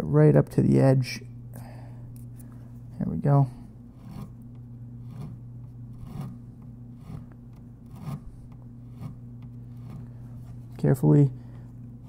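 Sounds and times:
steady low hum: 0:00.0 - 0:12.0
sandpaper scratching on fret: 0:04.0 - 0:04.4, 0:05.0 - 0:06.4, 0:07.0 - 0:10.8.

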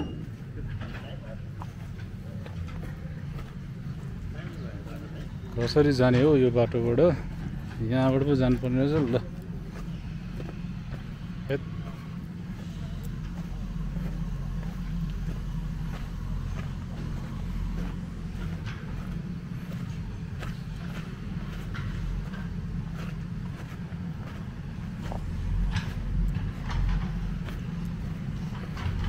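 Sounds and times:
distant diesel engine rumble: 0:00.0 - 0:29.0.

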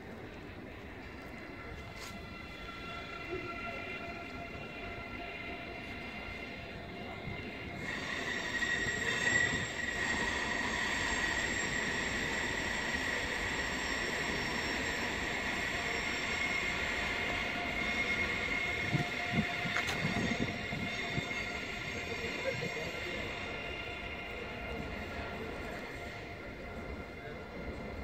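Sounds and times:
train low rumble: 0:00.0 - 0:28.0
train high-pitched squeal: 0:01.1 - 0:28.0.

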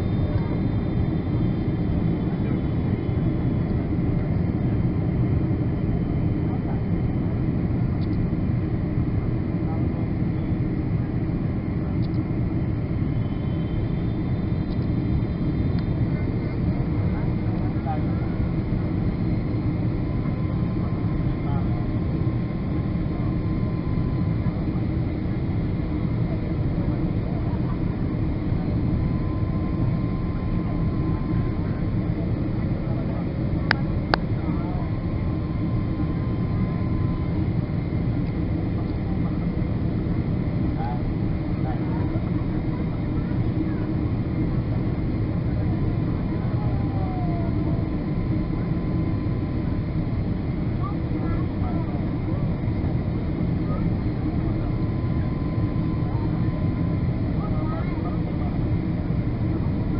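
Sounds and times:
airplane engine rumble: 0:00.0 - 0:59.9
faint steady whine: 0:00.0 - 0:59.9.

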